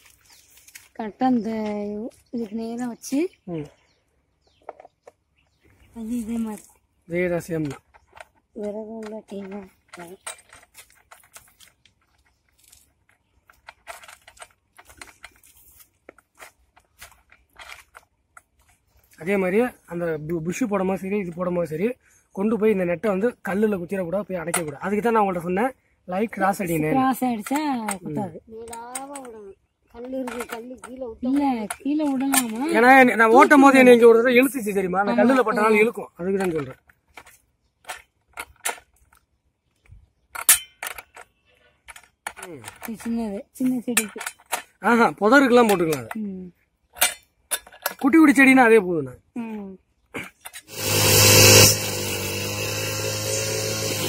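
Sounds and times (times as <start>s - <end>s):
metal parts clicking and scraping: 6.0s - 19.7s, 26.3s - 29.4s, 30.0s - 34.0s, 35.2s - 39.3s, 40.2s - 46.2s, 46.9s - 48.5s, 50.2s - 54.0s.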